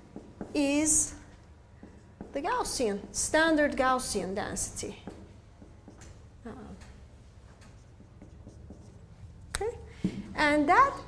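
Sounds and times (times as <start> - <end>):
marker writing on whiteboard: 0.0 - 9.8.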